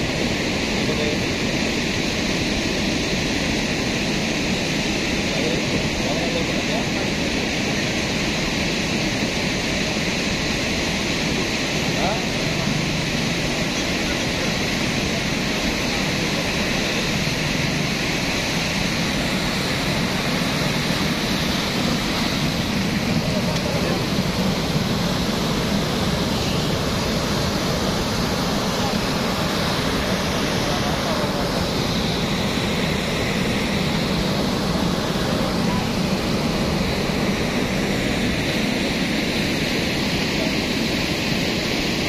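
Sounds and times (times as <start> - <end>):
muddy water rushing: 0.0 - 42.0.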